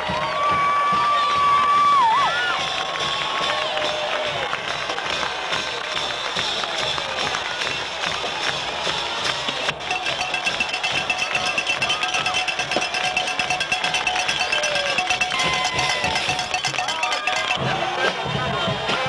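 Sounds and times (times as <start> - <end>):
band playing in stadium: 0.0 - 19.0
crowd voices: 0.0 - 19.0.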